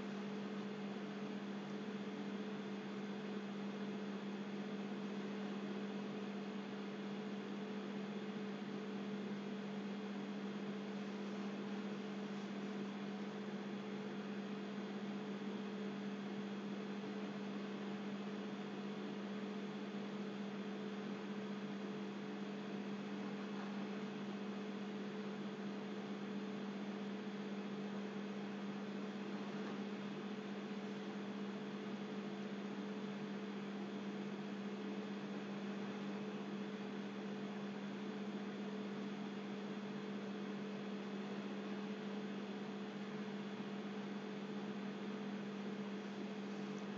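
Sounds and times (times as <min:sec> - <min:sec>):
electrical hum: 0:00.0 - 0:46.9.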